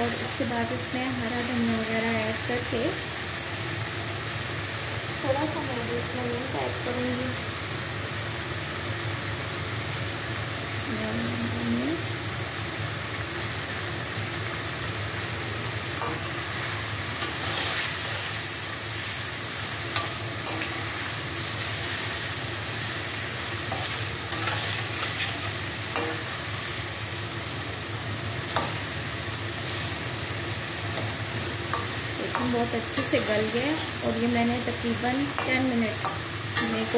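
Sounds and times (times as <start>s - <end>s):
curry sizzling in a pan: 0.0s - 36.9s.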